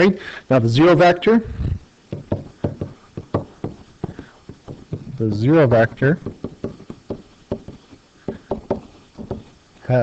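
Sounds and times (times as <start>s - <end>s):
stylus knocking and scraping: 1.5s - 5.2s, 5.8s - 9.6s.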